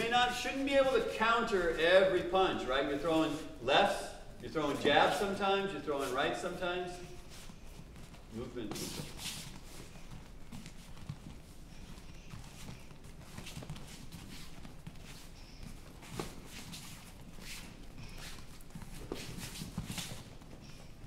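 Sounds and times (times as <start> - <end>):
bare feet on foam mats: 0.0 - 21.0.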